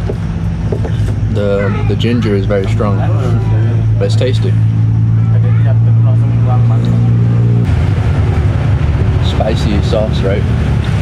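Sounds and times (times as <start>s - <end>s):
rough low rumble: 0.0s - 11.0s.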